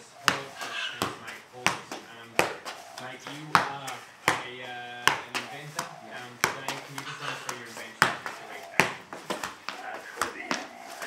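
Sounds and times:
soccer ball thuds: 0:00.0 - 0:11.0
voices talking: 0:00.0 - 0:11.0.

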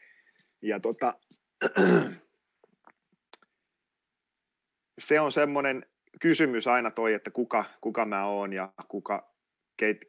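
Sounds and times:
man clearing his throat: 0:01.6 - 0:02.3.

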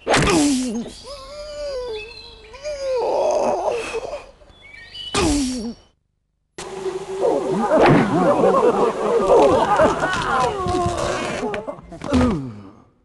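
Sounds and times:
cartoon voice sighing and groaning: 0:00.2 - 0:04.3
many overlapping voices: 0:07.0 - 0:10.9.

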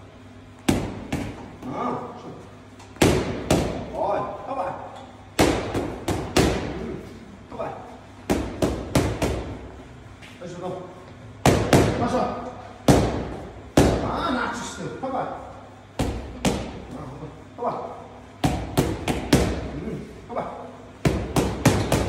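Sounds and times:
boxing gloves hitting focus mitts: 0:21.0 - 0:22.0.

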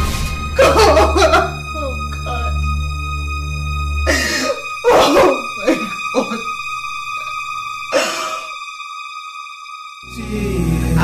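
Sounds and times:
background music: 0:00.0 - 0:11.0
woman sobbing: 0:00.6 - 0:02.6, 0:04.1 - 0:06.6, 0:07.9 - 0:08.6.

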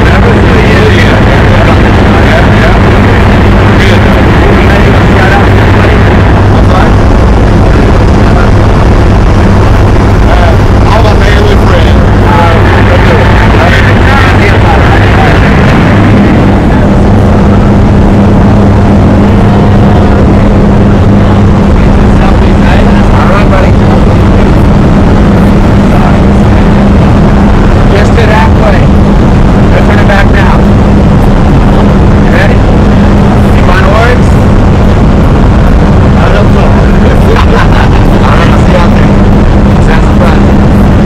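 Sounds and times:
airplane engine and propeller drone: 0:00.0 - 0:41.0.

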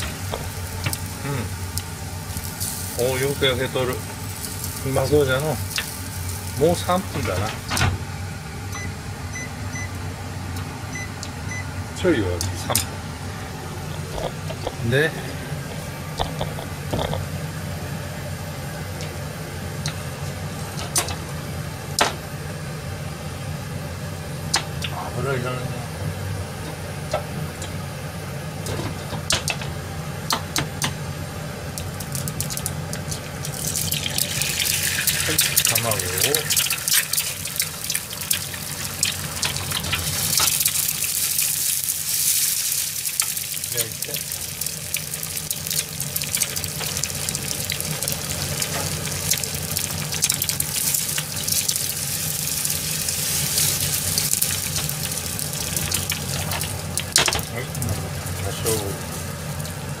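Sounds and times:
oil spitting crackles: 0:00.0 - 0:07.8, 0:12.3 - 0:17.7, 0:31.6 - 1:00.0
eggs sizzling in frying pan: 0:00.0 - 0:12.4, 0:13.0 - 0:25.0, 0:25.8 - 1:00.0.

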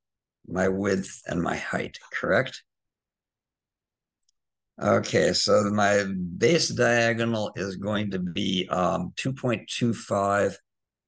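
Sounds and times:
man speaking: 0:00.5 - 0:02.8, 0:04.8 - 0:10.7.

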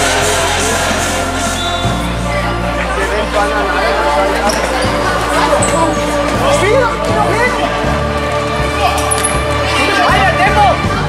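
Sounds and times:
music: 0:00.0 - 0:11.0
voices: 0:00.0 - 0:11.0.

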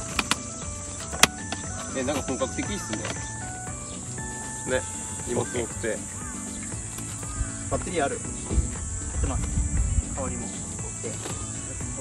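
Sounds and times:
metal case latches clicking: 0:00.0 - 0:03.5
cicada drone: 0:00.0 - 0:12.0.

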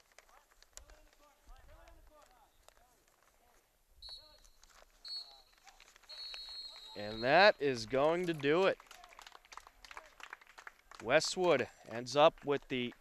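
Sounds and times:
referee's whistle blasts: 0:04.0 - 0:05.5, 0:06.1 - 0:07.7.

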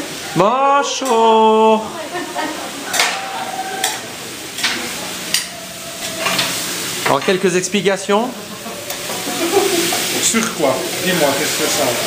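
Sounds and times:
potatoes sizzling in a tray: 0:00.0 - 0:12.0.

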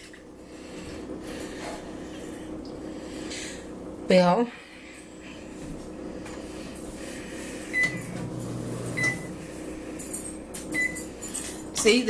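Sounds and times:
microwave keypad beeps: 0:07.7 - 0:08.1, 0:08.9 - 0:09.3, 0:10.8 - 0:11.0.

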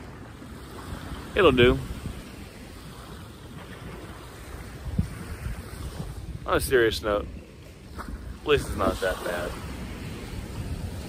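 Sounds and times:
small waves lapping: 0:00.0 - 0:11.0
wind buffeting microphone: 0:00.0 - 0:11.0.

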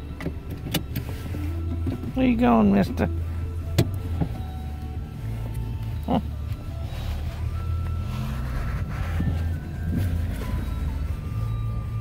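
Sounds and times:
car engine humming from inside cabin: 0:00.0 - 0:12.0.

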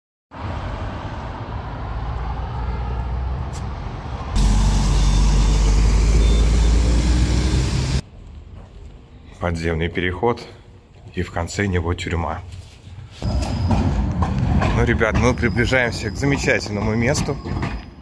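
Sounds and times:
road traffic passing: 0:00.3 - 0:09.2
heavy vehicle engine hum: 0:00.4 - 0:08.1.

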